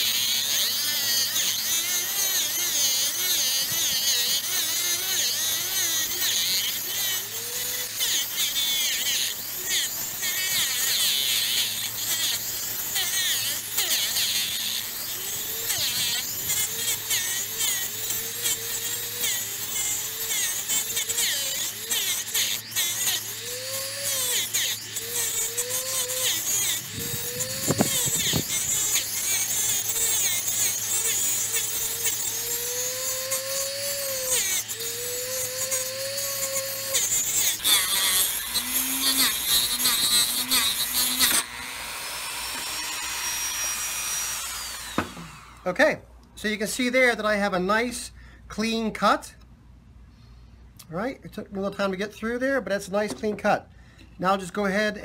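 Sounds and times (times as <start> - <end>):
rotary tool grinding glass: 0.0 - 45.7.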